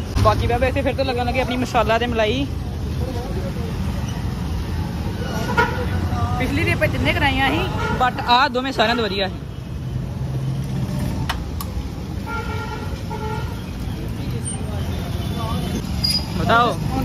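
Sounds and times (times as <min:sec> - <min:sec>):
vehicle horn: 0:12.2 - 0:13.6.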